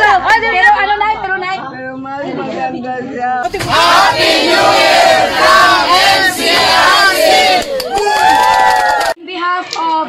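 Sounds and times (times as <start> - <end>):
crowd shouting and cheering: 3.4 - 9.2.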